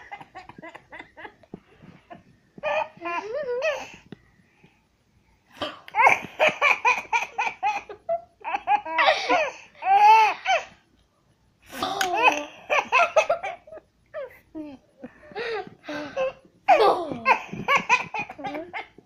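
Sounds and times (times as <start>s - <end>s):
toddler giggling: 16.0s - 19.0s.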